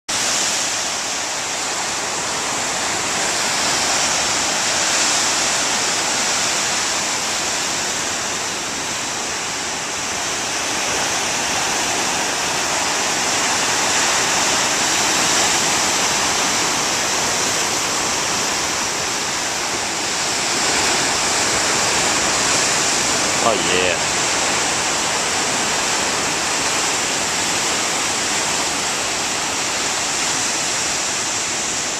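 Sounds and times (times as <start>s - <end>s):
ocean surf breaking over rocks: 0.1s - 31.9s.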